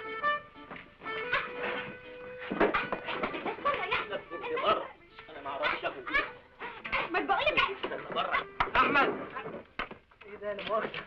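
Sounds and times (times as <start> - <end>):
people squealing and yelping: 1.2 - 4.9, 5.5 - 9.6.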